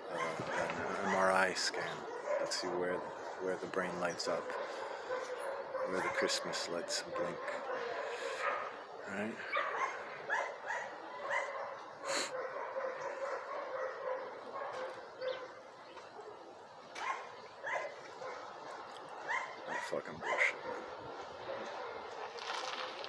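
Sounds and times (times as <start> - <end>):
dog yipping: 0.1 - 1.3, 9.5 - 15.5, 17.0 - 18.4, 19.3 - 20.8.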